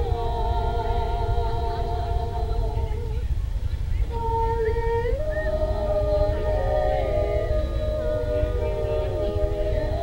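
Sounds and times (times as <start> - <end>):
women singing in harmony: 0.0 - 3.4, 4.0 - 10.0
steady low rumble: 0.0 - 10.0.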